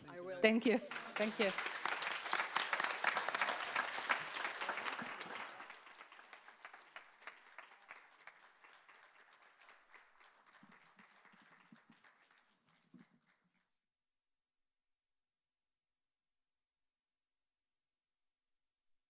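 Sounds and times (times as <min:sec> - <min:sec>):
audience applauding: 0:00.0 - 0:13.6.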